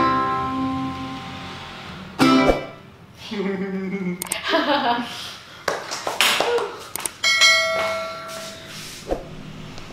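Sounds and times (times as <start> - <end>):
bell-like chime ringing: 7.2 - 8.7.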